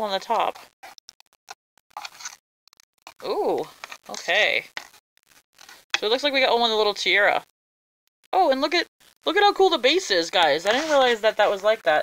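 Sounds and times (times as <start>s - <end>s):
plastic clicks and scrapes: 0.6s - 6.0s.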